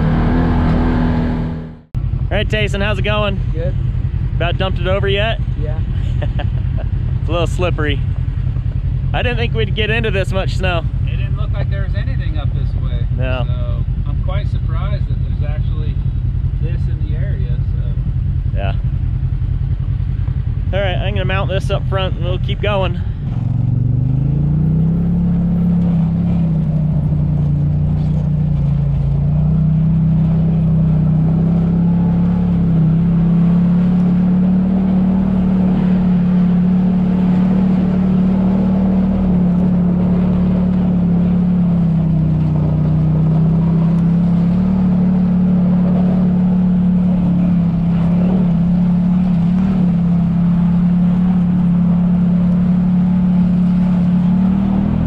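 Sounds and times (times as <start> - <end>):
utility vehicle engine revving: 0.0 - 55.0.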